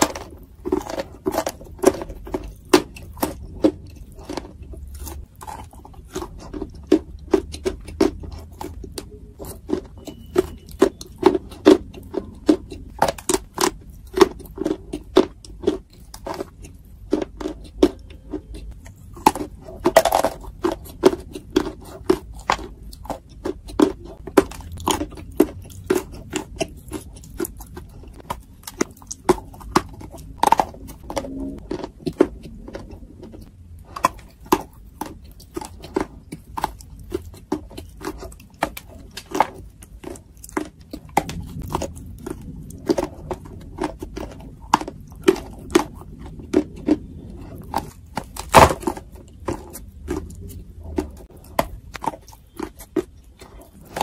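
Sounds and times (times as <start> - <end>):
crunchy biting and chewing: 0.0 - 54.0.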